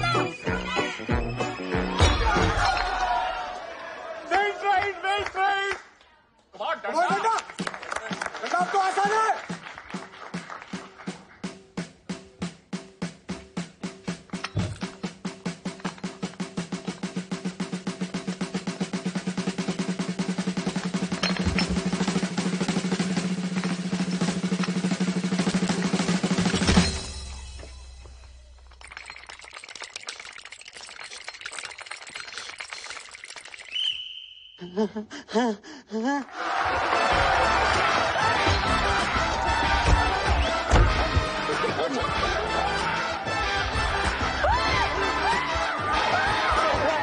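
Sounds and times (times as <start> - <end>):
drum roll: 10.7 - 27.4.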